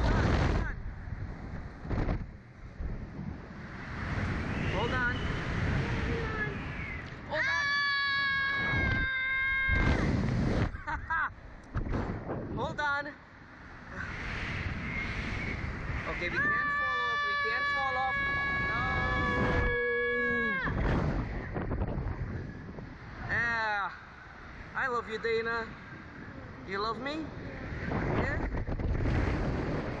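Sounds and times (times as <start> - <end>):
wind gusts on microphone: 0.0 - 30.0
girl screaming: 7.3 - 10.0, 16.4 - 20.8.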